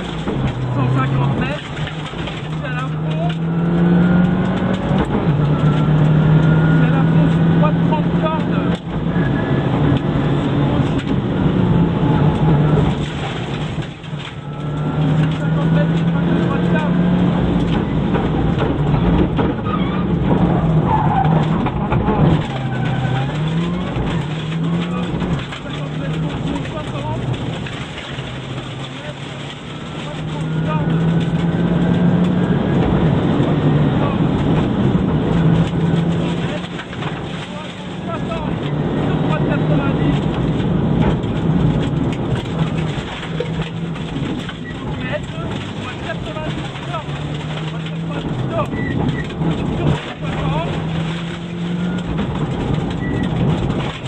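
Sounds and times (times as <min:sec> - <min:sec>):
rally car engine revving: 0:00.0 - 0:54.0.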